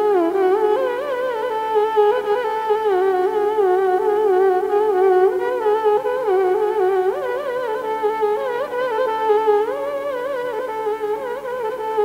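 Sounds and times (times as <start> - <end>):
violin playing slow melody: 0.0 - 12.0.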